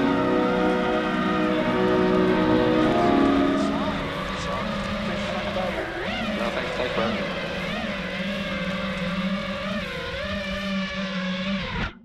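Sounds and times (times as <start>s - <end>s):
drone motors whining: 0.0s - 12.0s.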